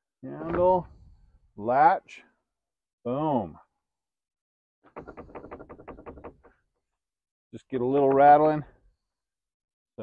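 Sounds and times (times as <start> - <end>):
wooden door rattling in frame: 4.9 - 6.7.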